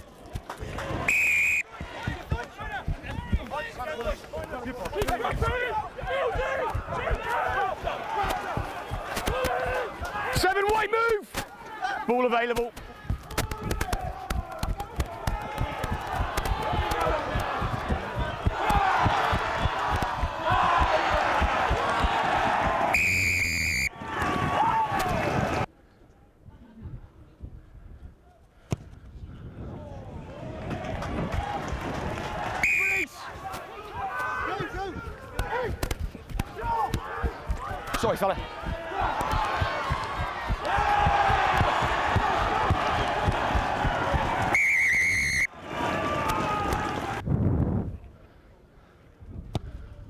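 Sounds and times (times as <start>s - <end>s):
people shouting and cheering: 0.0s - 25.7s, 29.8s - 47.3s
referee's whistle blast: 1.1s - 1.7s, 22.9s - 23.9s, 32.6s - 33.1s, 44.5s - 45.5s.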